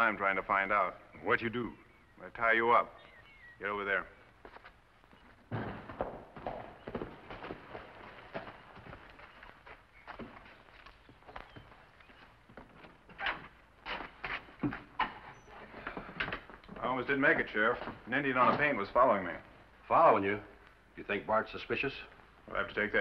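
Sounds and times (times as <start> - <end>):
horse hooves on dirt: 3.0 - 20.9
footsteps on dirt: 4.2 - 19.9.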